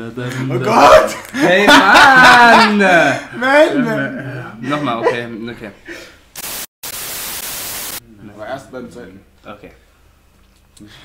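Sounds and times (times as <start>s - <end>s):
static hiss: 6.4s - 8.0s.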